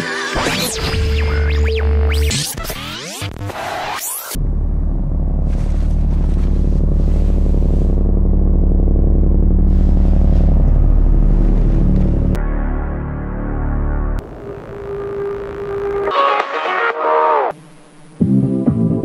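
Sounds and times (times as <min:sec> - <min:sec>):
deep sustained bass drone: 0:04.4 - 0:16.2
electronic pitch glides: 0:10.6 - 0:18.3.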